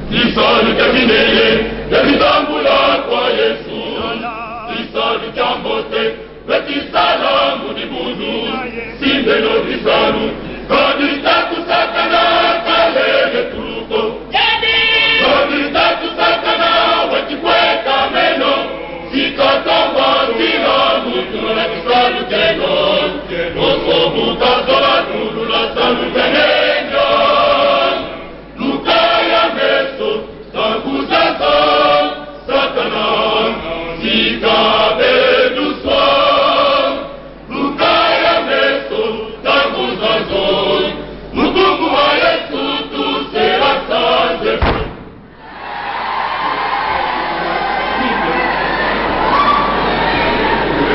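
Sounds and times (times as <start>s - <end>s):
male choir singing gospel: 0.0s - 45.0s.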